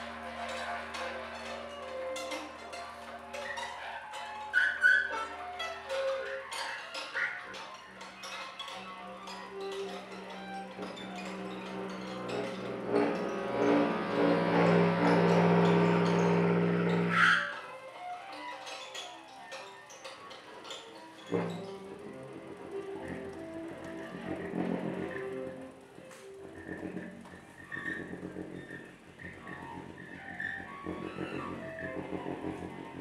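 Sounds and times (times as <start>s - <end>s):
low pulsing layer: 0.0s - 3.8s, 10.4s - 17.3s
low drone of sustained tones: 0.0s - 17.6s.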